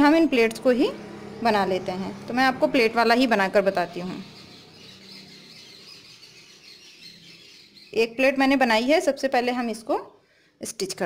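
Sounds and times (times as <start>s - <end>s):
faint bird chirping: 0.9s - 10.5s.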